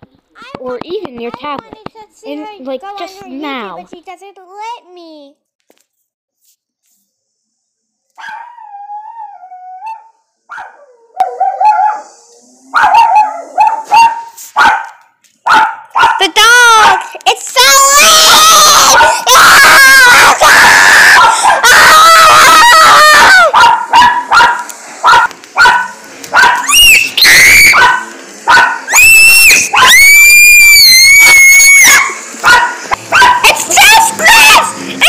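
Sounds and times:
small dog yelping: 8.2s - 8.8s, 15.5s - 17.0s, 18.8s - 19.4s, 23.2s - 34.8s.

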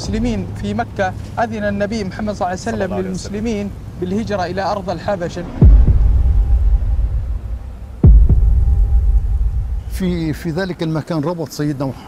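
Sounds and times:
sustained low rumble: 5.5s - 10.6s
deep boom with falling pitch: 5.6s - 10.4s.

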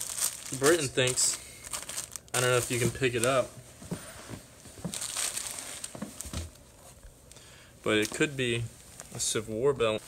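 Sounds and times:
plastic bag crinkling: 0.0s - 3.5s, 4.8s - 6.6s.

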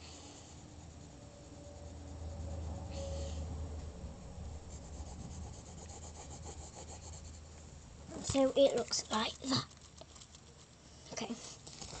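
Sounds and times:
pencil scratching on paper: 0.0s - 3.1s, 4.2s - 7.6s.

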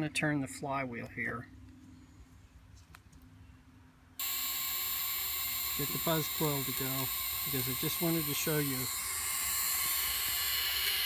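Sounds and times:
high hissing coil buzz: 4.2s - 11.0s.

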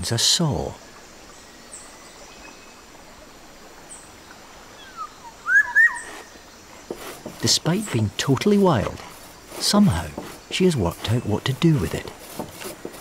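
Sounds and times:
forest background hiss: 0.0s - 13.0s
faint high bird chirps: 4.7s - 6.5s
loud whistled bird calls: 4.8s - 6.5s.

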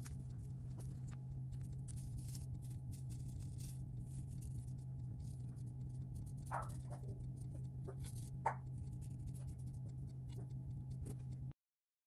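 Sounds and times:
gold leaf crinkling under brush: 0.0s - 11.4s
steady low hum: 0.0s - 11.6s.

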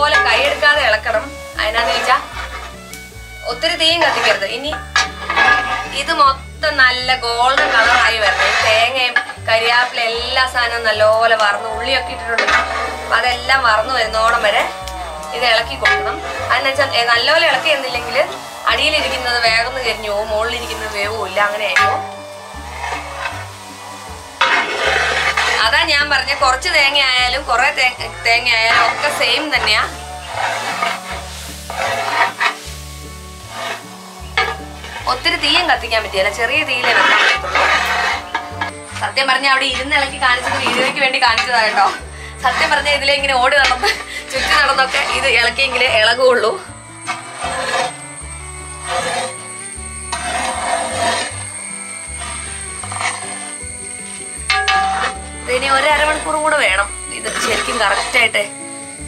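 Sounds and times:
ladle scraping metal pot: 0.0s - 58.7s
background music with bass line: 0.0s - 59.0s.

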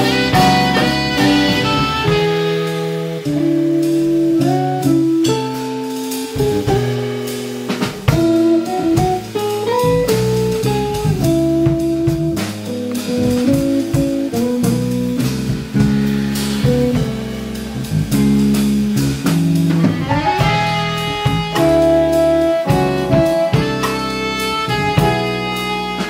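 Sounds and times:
drum kit: 0.0s - 26.0s
electric bass: 0.0s - 26.0s
electric guitar: 0.0s - 26.0s.

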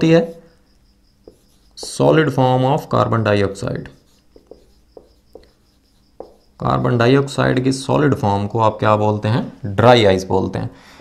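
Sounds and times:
marker squeaking on whiteboard: 0.0s - 7.4s.

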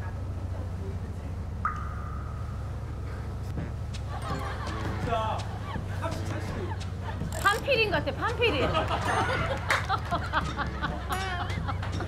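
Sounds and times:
boat engine humming: 0.0s - 12.0s
high tone: 1.6s - 4.7s
voices and laughter: 4.0s - 12.0s.

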